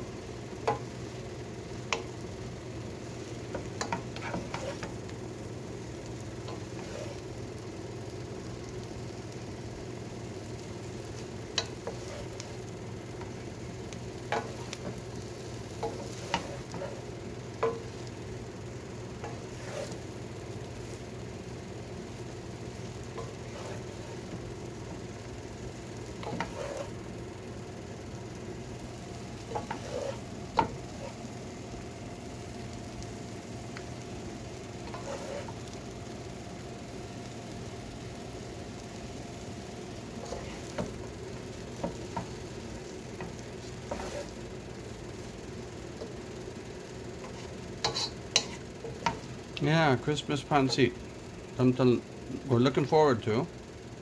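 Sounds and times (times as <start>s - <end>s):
noodles sizzling in a pot: 0.0s - 54.0s.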